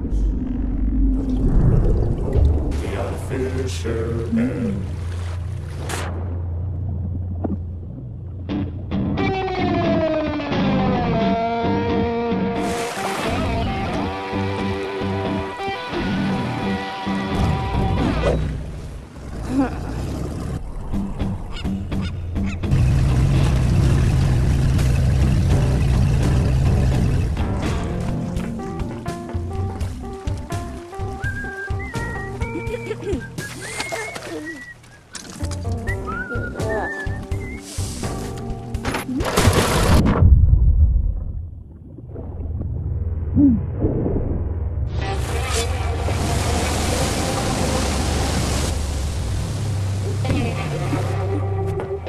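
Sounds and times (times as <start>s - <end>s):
deep rumble: 0.0s - 10.0s, 17.3s - 30.6s, 38.6s - 51.6s
rushing sea water: 1.1s - 8.4s, 12.6s - 38.4s, 44.1s - 51.5s.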